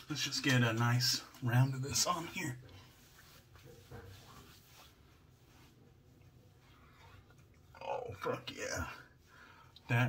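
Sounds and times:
hands rubbing and patting skin: 0:00.0 - 0:07.7
hair rustles: 0:00.0 - 0:08.9.

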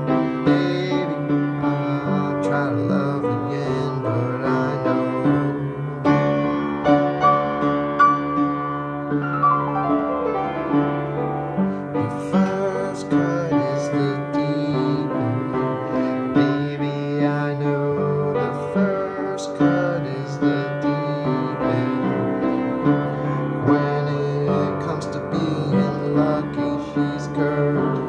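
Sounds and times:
piano keyboard music: 0:00.0 - 0:28.0.

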